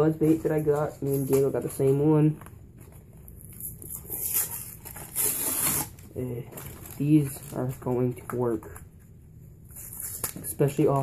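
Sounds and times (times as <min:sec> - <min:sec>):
cardboard package rustling: 0:00.2 - 0:09.0.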